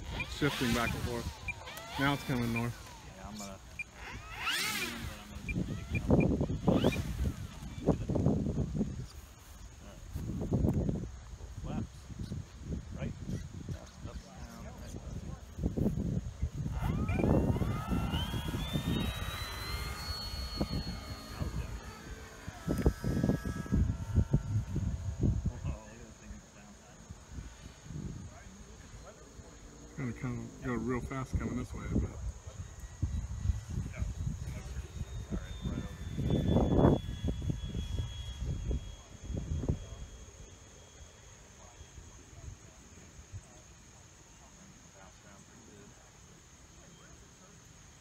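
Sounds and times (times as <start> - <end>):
wind buffeting microphone: 0.0 - 26.4, 30.8 - 40.2
model plane motor whine: 0.0 - 47.6.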